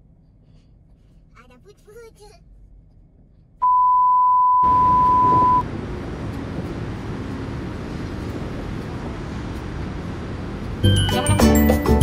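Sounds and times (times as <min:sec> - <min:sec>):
loud steady test-tone beep: 0:03.6 - 0:05.6
steady rumbling noise: 0:04.6 - 0:12.0.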